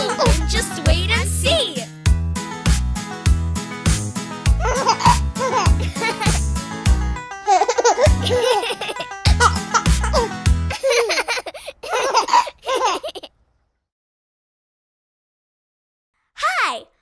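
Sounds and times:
cartoon children giggling: 0:00.0 - 0:00.4, 0:04.6 - 0:06.4, 0:07.4 - 0:13.4
upbeat children's song: 0:00.0 - 0:03.0, 0:03.8 - 0:10.8.

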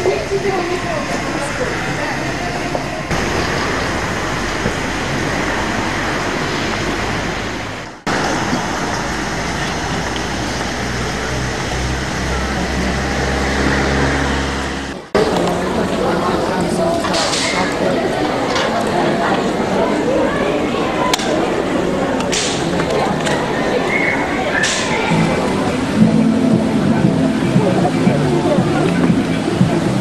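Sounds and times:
vehicle engine drone: 0:00.0 - 0:15.8, 0:25.0 - 0:30.0
traffic noise: 0:00.0 - 0:30.0
voices of passers-by: 0:00.0 - 0:30.0.

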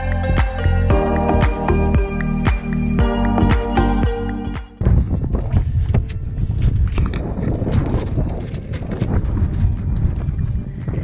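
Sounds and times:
wind buffeting microphone: 0:04.8 - 0:11.0.

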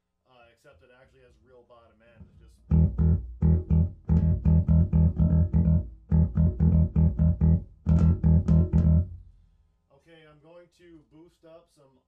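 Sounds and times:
punchy electric bass notes: 0:02.6 - 0:09.3.

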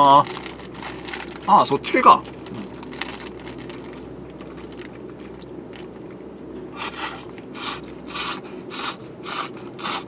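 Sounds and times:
person slurping noodles: 0:06.8 - 0:10.0.

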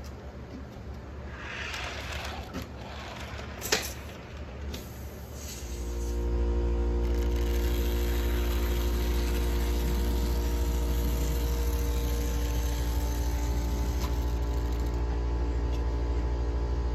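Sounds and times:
low hum: 0:00.9 - 0:16.9
model train motor whirring: 0:01.3 - 0:06.1, 0:07.0 - 0:15.0.

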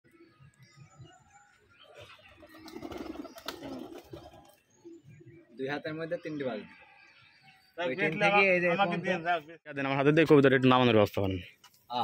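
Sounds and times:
pigeons cooing: 0:01.0 - 0:05.6.

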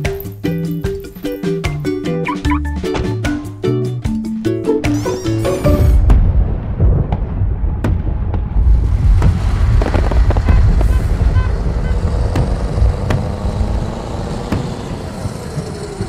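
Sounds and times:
heavy low rumble: 0:05.6 - 0:16.0.

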